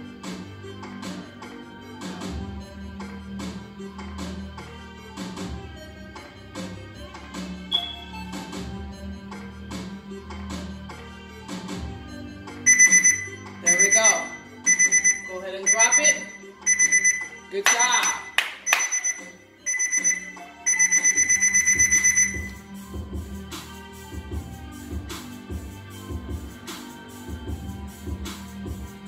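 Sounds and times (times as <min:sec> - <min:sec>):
hip hop beat: 0:00.0 - 0:29.0
timer alarm beeping: 0:07.7 - 0:08.3, 0:12.7 - 0:22.6.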